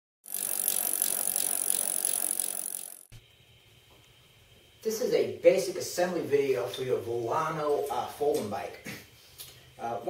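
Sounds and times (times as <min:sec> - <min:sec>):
bicycle freewheel ticking: 0:00.2 - 0:03.1.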